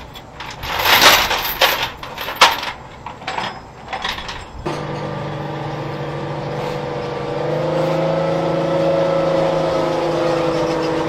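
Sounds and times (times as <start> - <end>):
chain clanking: 0.0 - 5.2
steel chains rattling and clinking: 0.0 - 5.2.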